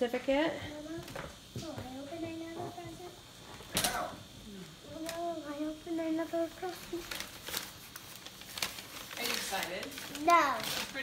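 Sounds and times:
paper and cardboard rustling: 6.6 - 11.0.

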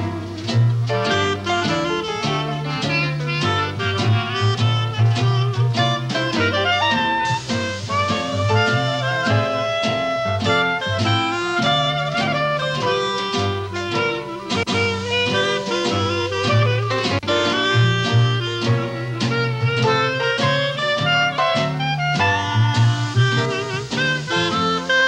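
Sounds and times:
clarinets playing melody: 0.0 - 25.0
drums: 0.0 - 25.0
guitar: 0.0 - 25.0
string bass walking: 0.0 - 25.0.

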